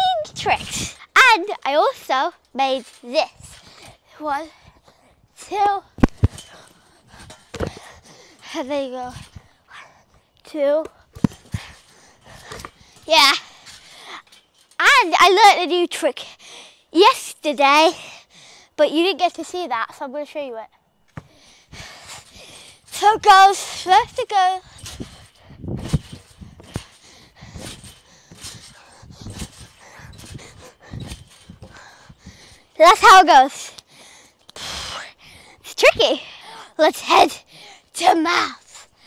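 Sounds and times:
basketball bouncing on trampoline: 5.5 - 9.5, 10.8 - 13.8, 21.1 - 32.5
child breathing: 16.2 - 16.9, 18.0 - 18.8, 21.2 - 22.9, 26.3 - 32.8, 33.5 - 36.8, 37.4 - 37.9.

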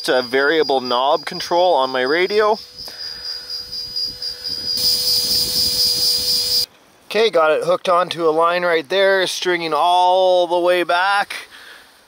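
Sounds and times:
electric winch motor whining: 2.1 - 6.7.

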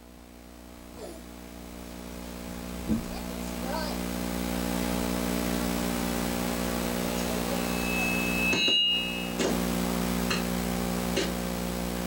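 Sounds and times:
low hum of held tones: 0.0 - 12.0
brief higher tones: 7.2 - 9.5.

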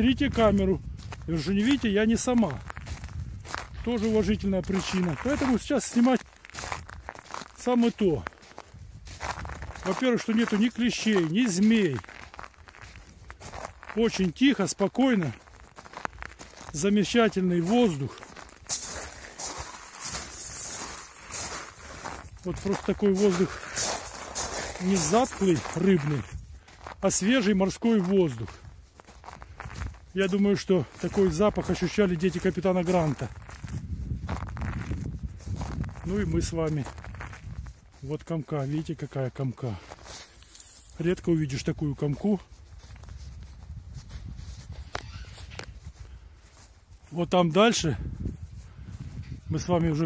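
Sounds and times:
wind rumbling on microphone: 0.0 - 10.6, 18.0 - 27.1, 28.4 - 30.2, 30.8 - 38.1, 42.4 - 47.1, 47.9 - 50.0
footsteps on rocky shore: 0.0 - 47.2.

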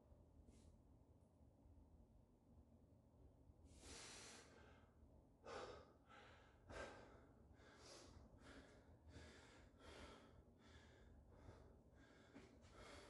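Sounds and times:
man breathing hard: 3.7 - 13.0.

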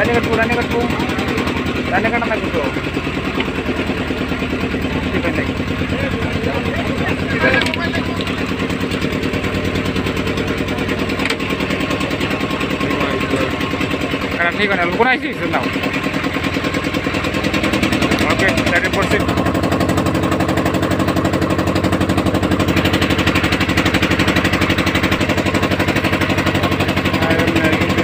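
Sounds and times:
boat engine running: 0.0 - 28.0.

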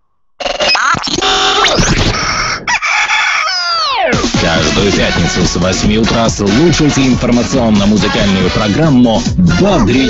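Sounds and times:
rooster crowing: 2.4 - 4.1.

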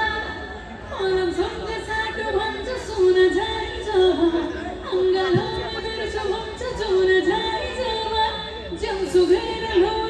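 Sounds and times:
woman singing into a microphone: 0.0 - 10.0.

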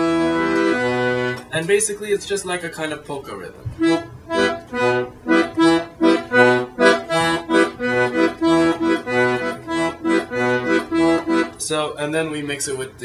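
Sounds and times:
accordion bass oom-pah rhythm: 0.0 - 2.0, 3.6 - 12.0.

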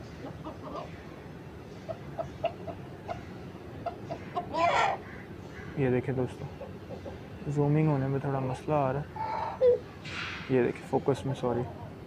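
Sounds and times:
hen clucking softly: 0.1 - 1.0, 1.8 - 5.3, 6.5 - 7.2
hen squawking: 1.9 - 5.8.

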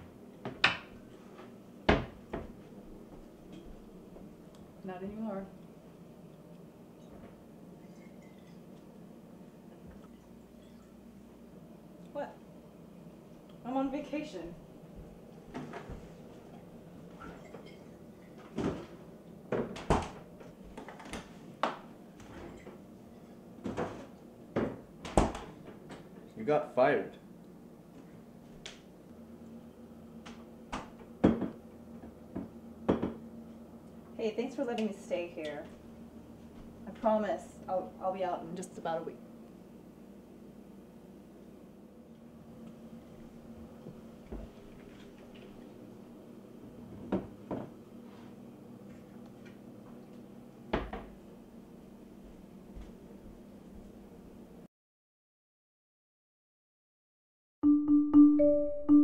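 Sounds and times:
faint steady hum: 0.0 - 54.6.

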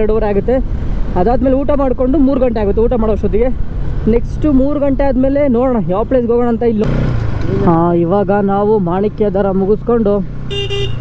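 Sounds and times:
motorcycle engine running: 4.7 - 11.0
man talking: 7.4 - 10.3
vehicle horn toot: 10.5 - 11.0.

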